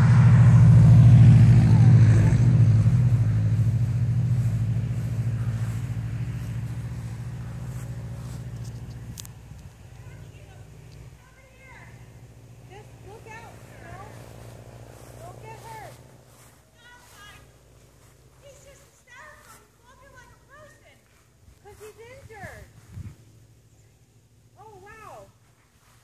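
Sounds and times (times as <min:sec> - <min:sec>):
distant voices talking: 0:00.0 - 0:22.9
low steady hum: 0:00.0 - 0:25.9.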